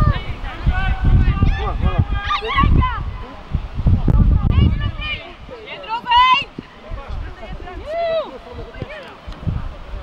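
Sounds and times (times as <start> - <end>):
people shouting calls: 0.0 - 3.5
wind buffeting microphone: 0.0 - 10.0.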